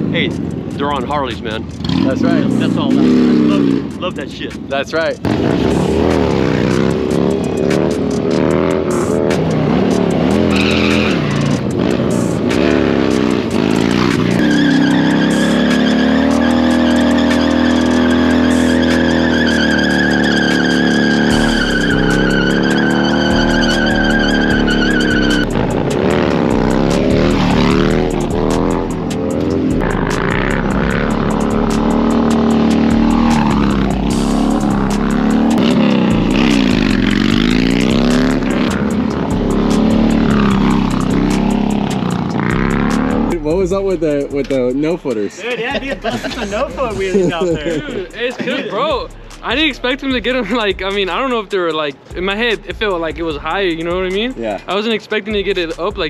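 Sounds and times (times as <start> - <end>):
tire squealing: 0.0 - 45.2, 45.8 - 56.0
motorcycles revving and accelerating: 0.0 - 54.8.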